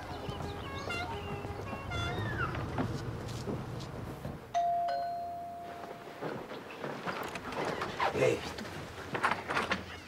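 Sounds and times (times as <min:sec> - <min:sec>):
doorbell chime: 0:04.5 - 0:06.2.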